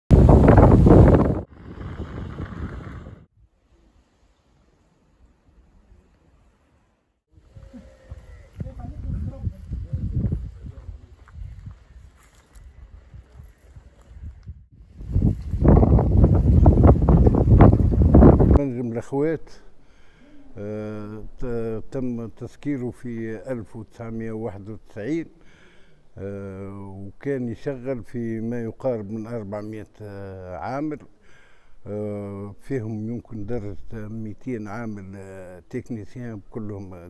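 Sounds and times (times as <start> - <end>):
wind buffeting microphone: 0.1 - 3.3, 7.4 - 18.6.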